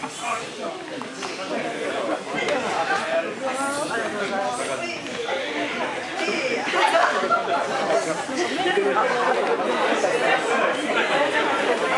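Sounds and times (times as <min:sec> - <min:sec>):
chatter of many people: 0:00.0 - 0:11.9.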